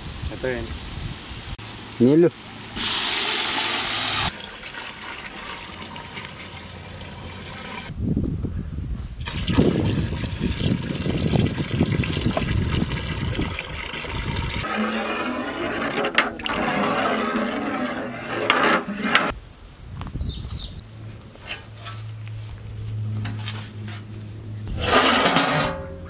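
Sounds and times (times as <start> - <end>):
water gushing into metal pot: 2.8 - 7.9, 9.2 - 19.3.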